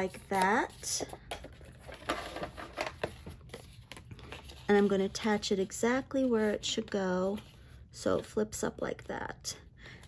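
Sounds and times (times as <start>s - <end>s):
paper rustling and crinkling: 0.0s - 7.7s.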